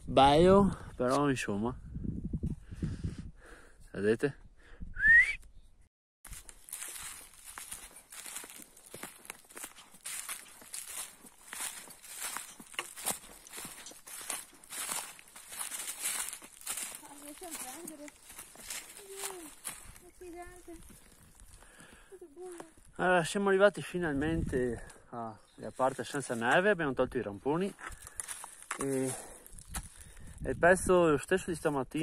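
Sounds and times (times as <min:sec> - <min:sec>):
footsteps crunching dry leaves: 0:06.2 - 0:22.9, 0:25.6 - 0:26.8, 0:27.6 - 0:30.4.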